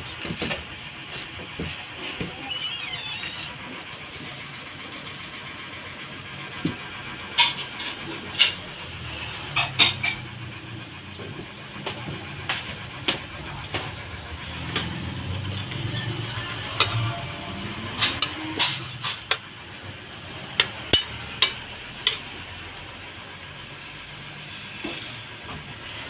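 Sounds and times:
stove hiss and hum: 0:00.0 - 0:26.0
metal ladle scraping a wok: 0:15.5 - 0:19.4, 0:21.0 - 0:22.3.

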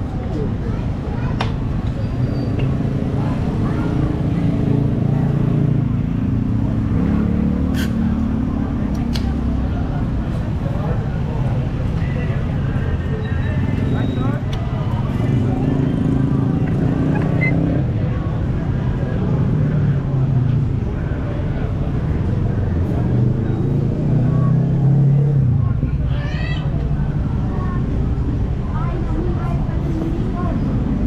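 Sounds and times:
cars and motorbikes passing: 0:00.0 - 0:31.0
people's voices: 0:00.0 - 0:31.0.

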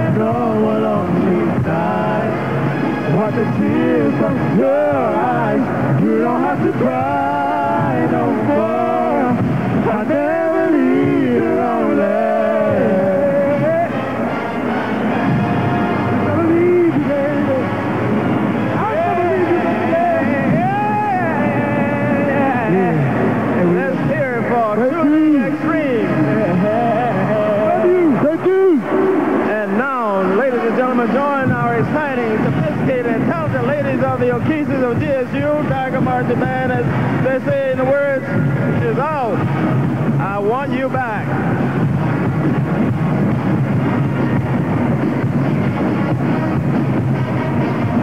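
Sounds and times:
male vocal group singing harmony: 0:00.0 - 0:14.3, 0:18.7 - 0:23.1, 0:26.0 - 0:28.2.

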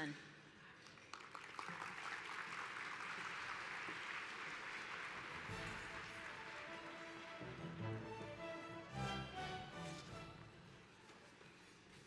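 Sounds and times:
audience applauding: 0:00.8 - 0:08.4
music: 0:05.3 - 0:10.9.

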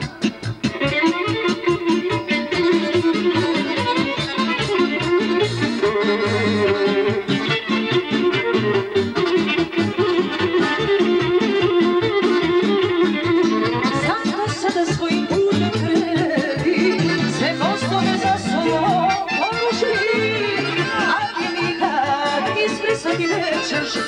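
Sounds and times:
folk dance band playing: 0:00.0 - 0:24.0
violin: 0:00.0 - 0:24.0.

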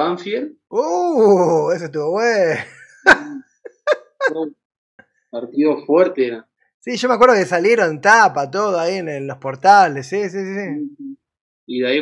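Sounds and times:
man laughing: 0:00.8 - 0:04.5.

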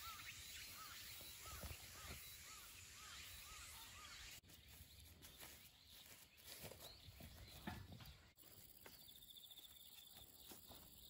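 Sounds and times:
footsteps on grass: 0:00.7 - 0:11.0.

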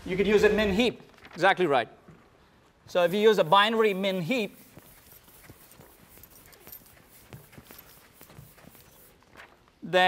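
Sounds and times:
eraser wiping blackboard: 0:02.9 - 0:09.4.

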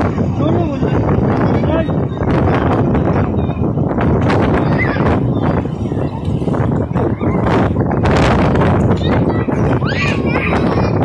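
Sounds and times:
beach wash noise: 0:00.0 - 0:11.0
children calling high-pitched: 0:06.2 - 0:07.8, 0:08.8 - 0:11.0.

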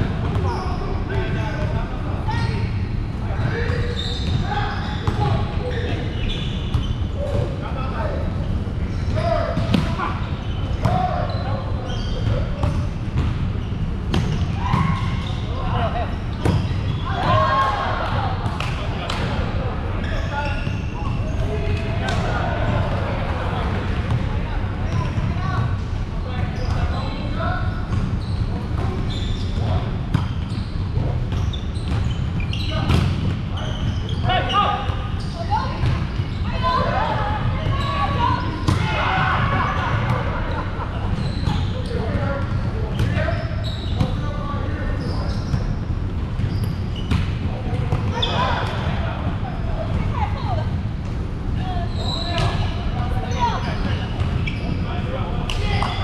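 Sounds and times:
players' voices and calls: 0:00.0 - 0:56.0.

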